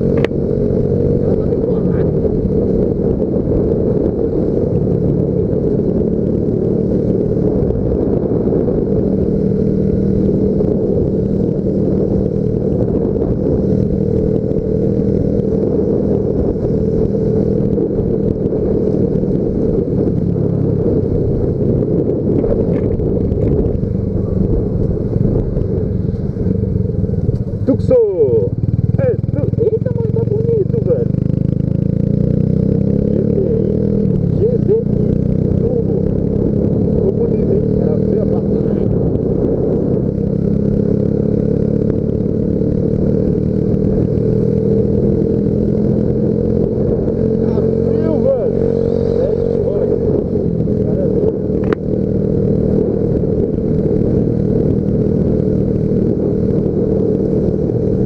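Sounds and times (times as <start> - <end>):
motorcycle engine running: 0.0 - 58.0.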